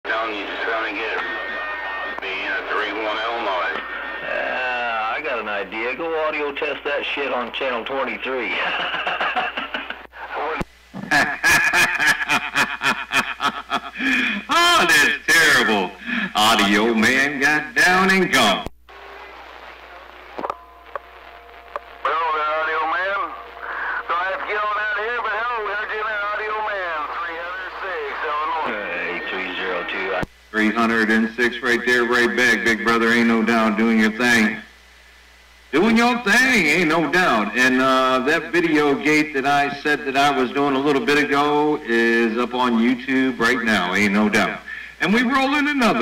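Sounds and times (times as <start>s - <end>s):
radio static hiss: 0.0s - 46.0s
voice over radio speaker: 0.1s - 9.0s, 10.1s - 10.7s, 22.0s - 34.7s
faint steady tones: 0.1s - 11.0s, 13.6s - 46.0s
short radio pops: 18.6s - 22.0s.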